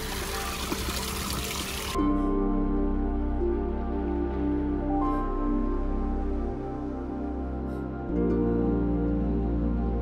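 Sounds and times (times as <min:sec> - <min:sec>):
water trickling down cascade: 0:00.0 - 0:02.0.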